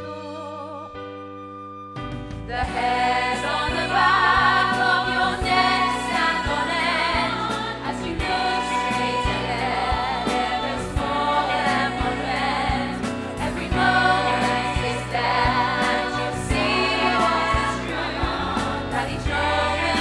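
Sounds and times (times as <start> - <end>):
ensemble singing in chorus: 2.6 - 20.0
band with steady drum beat: 3.7 - 20.0.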